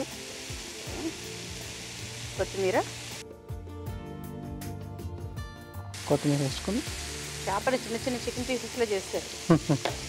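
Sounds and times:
food sizzling in a frying pan: 0.0s - 3.2s, 5.9s - 10.0s
soft background music: 0.0s - 10.0s.

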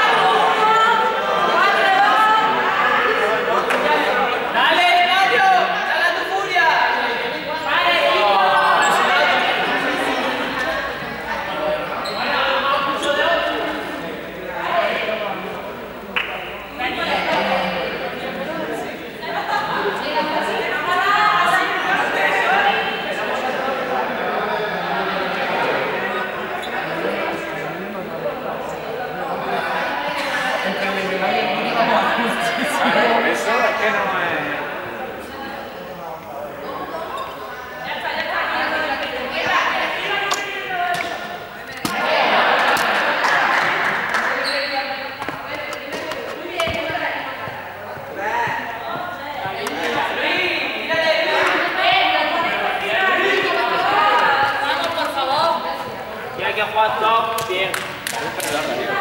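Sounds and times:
people talking indistinctly: 0.0s - 59.0s.

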